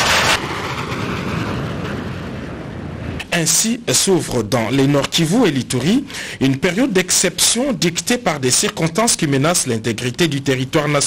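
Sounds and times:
fighter jets flying overhead: 0.0 - 4.4.

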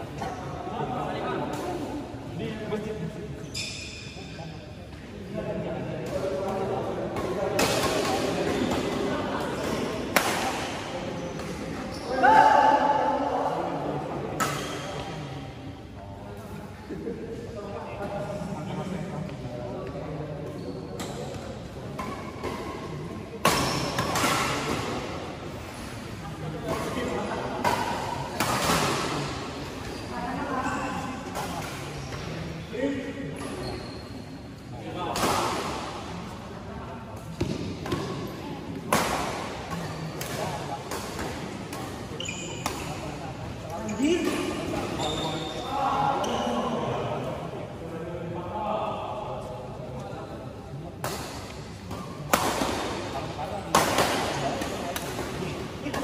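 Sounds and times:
racket hitting shuttlecock: 7.1 - 11.6, 51.0 - 53.1.

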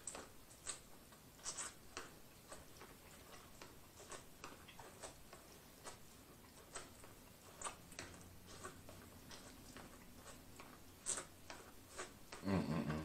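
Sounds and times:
chewing corn on the cob: 0.0 - 13.0.

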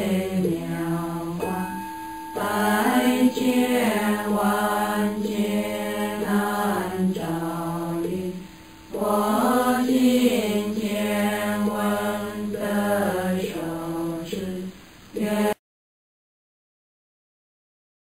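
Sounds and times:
slow sung chant: 0.0 - 15.6.

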